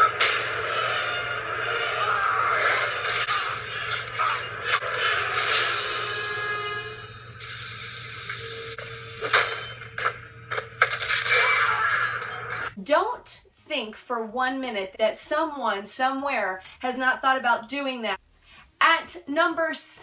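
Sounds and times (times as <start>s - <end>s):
horror film score: 0.0s - 7.4s.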